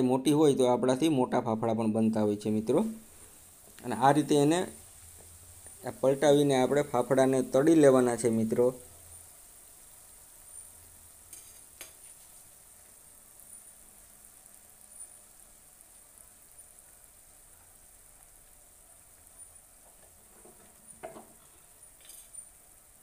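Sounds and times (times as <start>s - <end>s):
food sizzling in oil: 0.0s - 23.0s.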